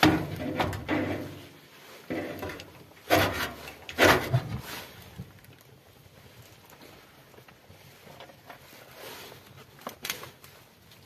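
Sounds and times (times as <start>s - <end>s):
ferro rod scraped with steel: 2.1s - 4.9s.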